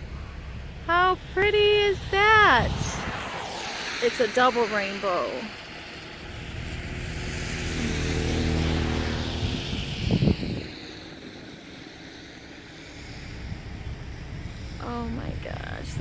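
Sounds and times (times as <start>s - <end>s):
motor vehicle passing: 0.0s - 16.0s
outdoor background noise: 0.0s - 16.0s.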